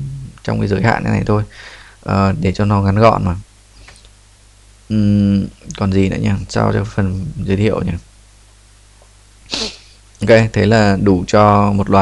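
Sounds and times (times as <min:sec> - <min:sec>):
faint low hum: 0:00.0 - 0:12.0
person breathing: 0:01.5 - 0:02.0, 0:09.5 - 0:10.0.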